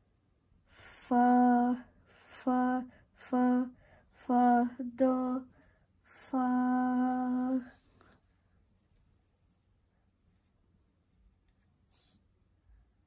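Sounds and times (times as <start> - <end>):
person singing note names: 0.8 - 7.8.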